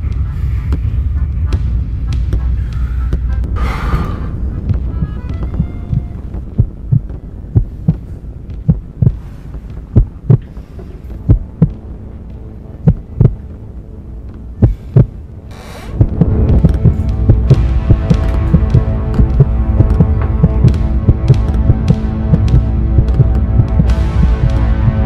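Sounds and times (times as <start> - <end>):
heartbeat thumps: 0.0 - 13.6, 14.3 - 15.3, 15.9 - 25.0
low hum: 0.0 - 25.0.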